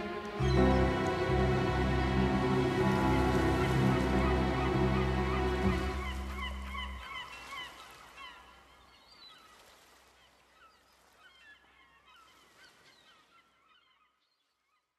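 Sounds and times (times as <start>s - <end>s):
band final chord: 0.0s - 7.0s
seagulls calling: 0.0s - 8.8s.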